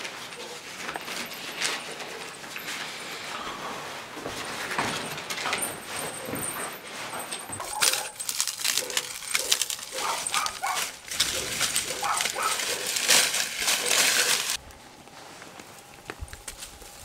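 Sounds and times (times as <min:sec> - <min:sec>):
dry stalks and straw rustling: 0:00.0 - 0:17.0.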